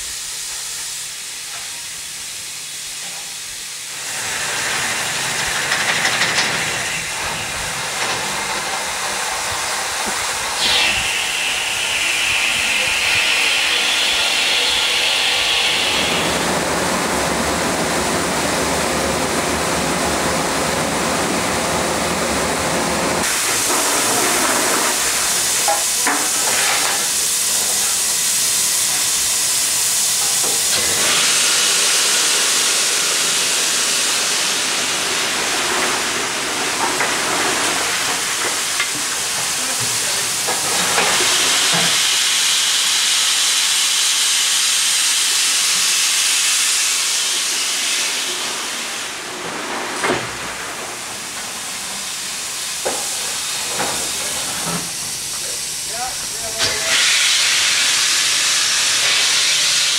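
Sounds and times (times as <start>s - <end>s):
steam locomotive hissing: 0.0s - 59.9s.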